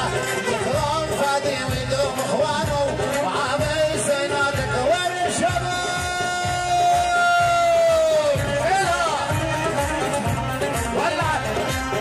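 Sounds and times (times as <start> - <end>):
band accompaniment with steady beat: 0.0 - 12.0.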